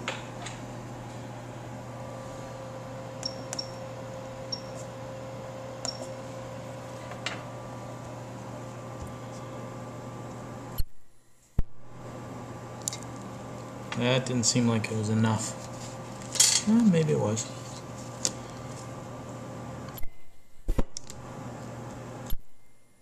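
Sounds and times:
electrical hum: 0.0 - 23.0.

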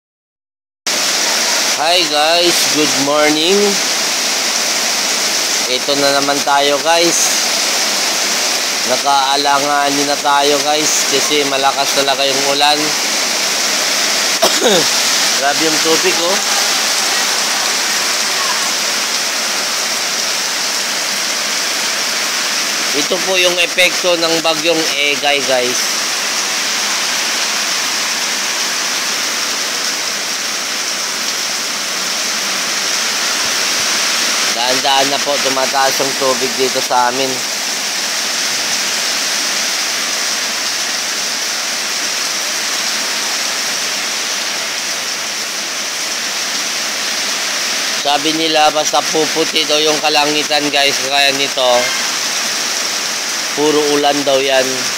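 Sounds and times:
heavy rain pouring: 0.9 - 54.9.

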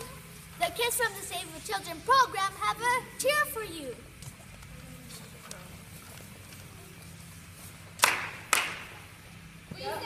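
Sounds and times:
hand claps echoing: 8.0 - 9.1.

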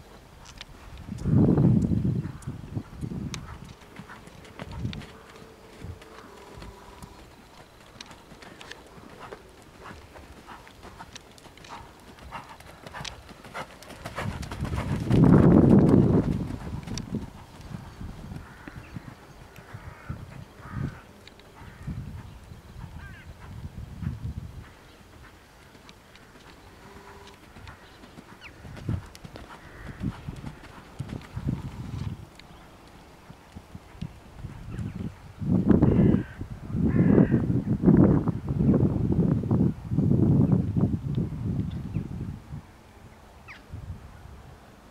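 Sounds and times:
horse hoofbeats cantering: 1.2 - 18.8, 21.5 - 35.0.

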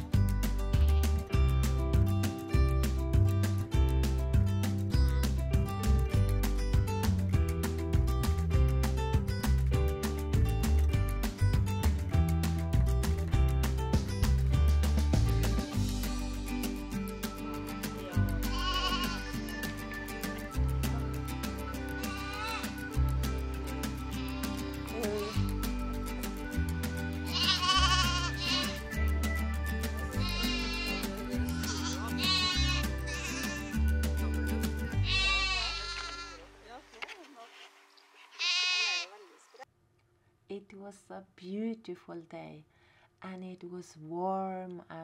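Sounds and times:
background music with a beat: 0.0 - 35.6
lamb bleating: 18.4 - 19.6, 22.0 - 22.8, 24.1 - 25.5, 27.3 - 28.8, 30.1 - 33.8, 34.9 - 36.5, 38.3 - 39.2.

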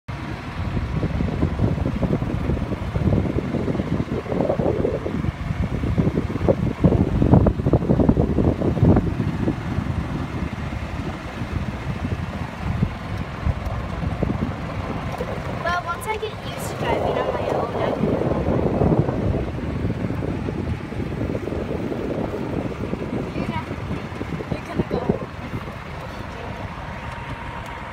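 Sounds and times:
wind buffeting microphone: 0.1 - 27.9.

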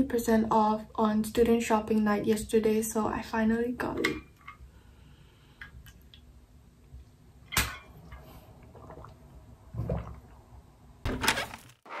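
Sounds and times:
person drinking from bottle: 8.1 - 9.2.

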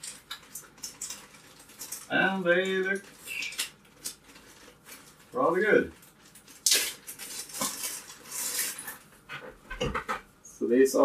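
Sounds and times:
packet rustling: 0.0 - 9.2.

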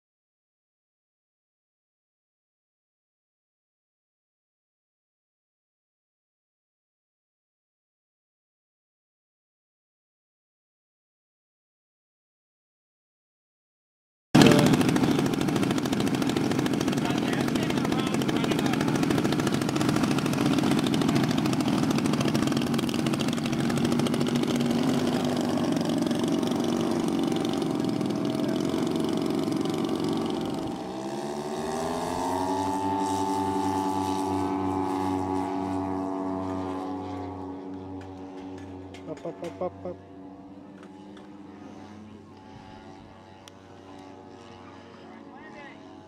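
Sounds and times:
model plane propeller engines: 14.4 - 46.0.

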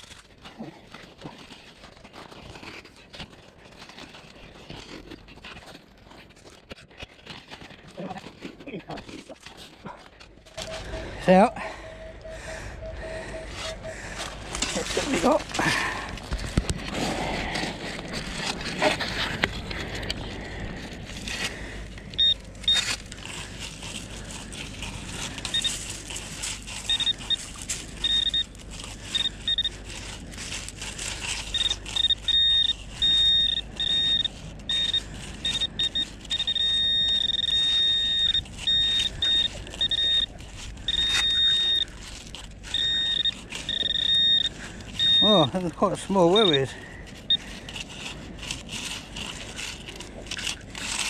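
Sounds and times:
shingle crunching and scraping: 0.0 - 11.2, 12.4 - 51.0
metal detector beeping: 10.5 - 15.9, 22.1 - 22.9, 25.4 - 25.9, 26.7 - 30.3, 31.1 - 47.5.

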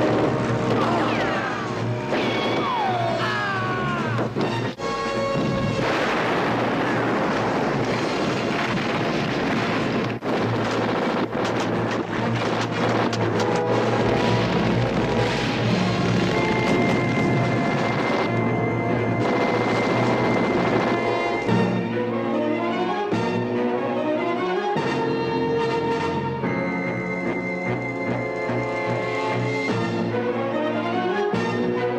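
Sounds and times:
explosions: 0.0 - 3.3, 4.0 - 21.8
film score music: 0.0 - 31.9
gunfire: 2.0 - 3.2, 5.3 - 18.3, 19.2 - 21.7.

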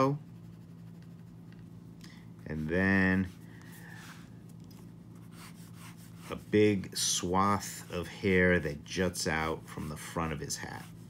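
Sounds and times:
pencil scratching on paper: 0.0 - 1.4, 5.2 - 6.6, 9.6 - 11.0
low steady hum: 0.0 - 11.0.

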